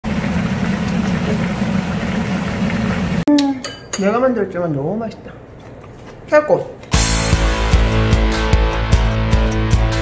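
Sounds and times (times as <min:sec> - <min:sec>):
person humming: 0:03.3 - 0:03.7.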